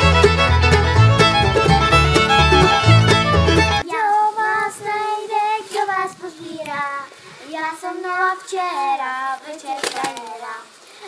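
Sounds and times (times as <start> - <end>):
fiddle-led instrumental music: 0.0 - 3.8.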